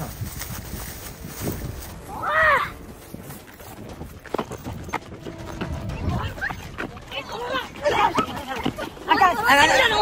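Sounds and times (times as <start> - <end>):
footsteps running on pavement: 0.0 - 10.0.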